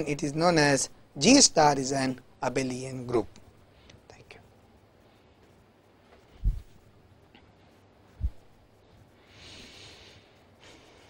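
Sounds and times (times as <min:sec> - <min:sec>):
faint room hiss: 0:00.0 - 0:11.0
faint short soft sounds: 0:06.1 - 0:06.8.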